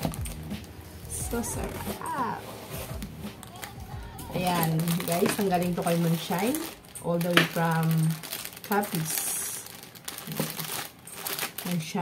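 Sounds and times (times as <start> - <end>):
plastic packs crinkling: 0.0 - 12.0.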